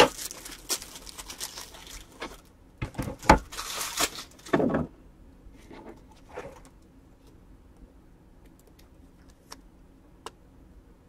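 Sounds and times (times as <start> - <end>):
foil wrappers crinkling: 0.0 - 2.5, 3.1 - 4.6.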